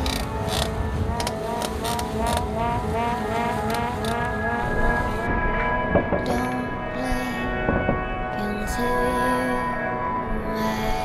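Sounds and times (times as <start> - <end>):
rising synth figure: 0.7 - 5.9
electronic beat: 1.0 - 5.4.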